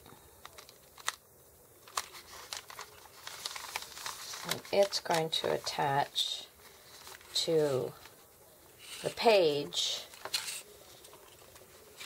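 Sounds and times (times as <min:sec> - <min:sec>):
paper handling sounds: 0:00.4 - 0:01.2, 0:01.8 - 0:12.0.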